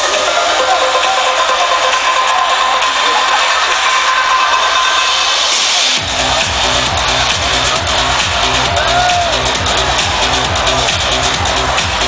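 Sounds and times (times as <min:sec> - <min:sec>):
loud trance music: 0:00.0 - 0:12.0.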